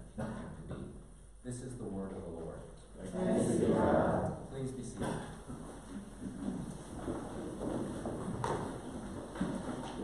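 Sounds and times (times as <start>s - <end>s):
people rustling and shuffling: 2.3s - 10.0s.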